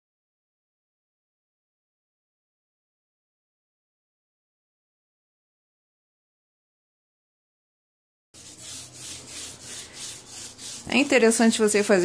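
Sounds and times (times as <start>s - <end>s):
foam roller rubbing glue: 8.4s - 12.0s.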